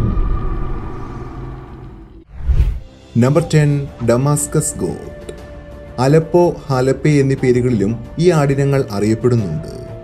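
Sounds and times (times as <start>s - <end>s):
deep rumbling boom: 0.0s - 2.2s.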